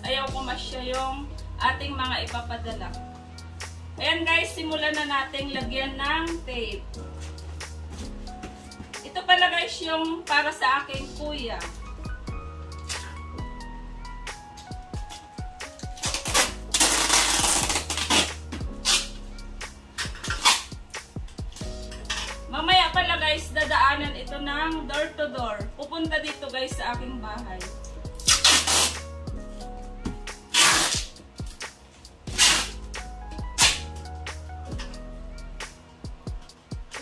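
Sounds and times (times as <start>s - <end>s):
background music: 0.0s - 37.0s
packing tape tearing off roll: 12.8s - 13.2s, 15.1s - 19.2s, 19.9s - 20.8s, 21.5s - 22.4s, 28.2s - 29.0s, 30.4s - 31.7s, 32.3s - 32.8s, 33.6s - 34.1s.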